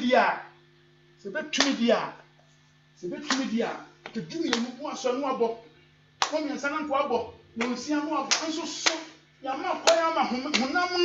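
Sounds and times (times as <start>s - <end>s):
hand claps: 1.6s - 1.9s, 3.2s - 4.8s, 6.2s - 6.5s, 7.6s - 9.2s, 9.8s - 10.8s
preacher speaking: 3.0s - 5.5s, 6.4s - 11.0s.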